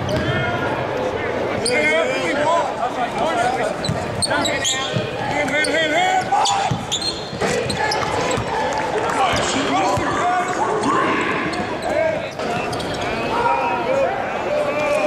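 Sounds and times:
sneakers squeaking: 0.0 - 0.4, 3.6 - 8.6, 9.2 - 13.5
voices in a large gym: 0.0 - 15.0
basketball bouncing: 6.6 - 8.6.

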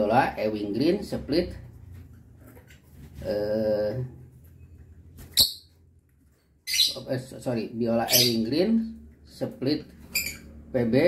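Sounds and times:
lovebird chirp: 5.3 - 5.8, 6.6 - 7.1, 8.0 - 8.5, 10.1 - 10.5.

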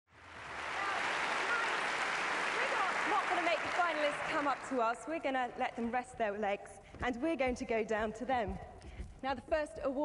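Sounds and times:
audience applauding: 0.1 - 5.1.

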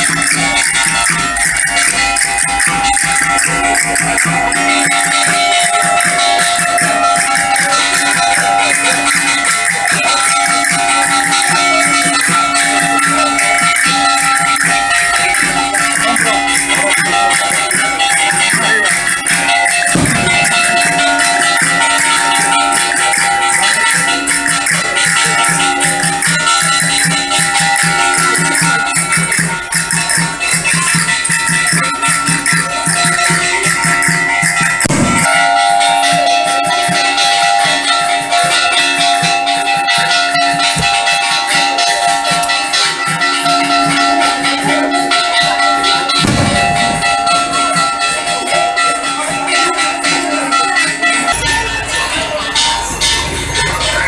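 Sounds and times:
drum rattling: 0.0 - 54.0.

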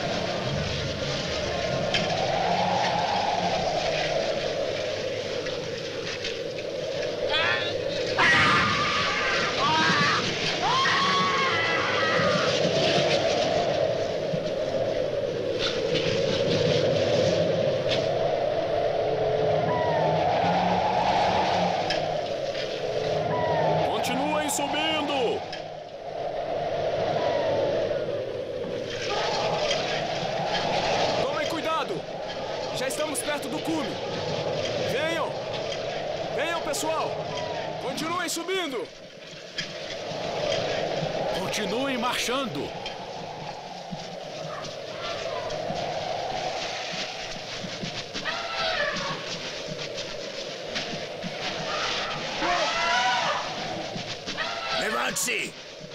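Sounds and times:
howling blizzard wind: 0.0 - 55.9
men crying out and shouting: 7.3 - 12.5.

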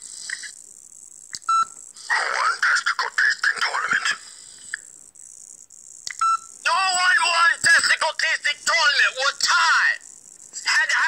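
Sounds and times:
telephone beep tones: 1.5 - 1.8, 6.2 - 6.5
high-pitched voice over phone: 6.7 - 10.0, 10.6 - 11.0.

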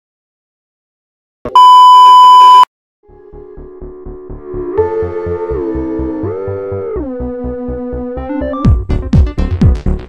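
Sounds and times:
high electronic beep: 1.5 - 2.7.

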